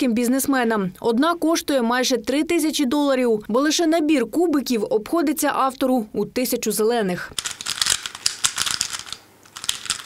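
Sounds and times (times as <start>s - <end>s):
rapid plastic clicking of cubes: 7.4s - 10.0s.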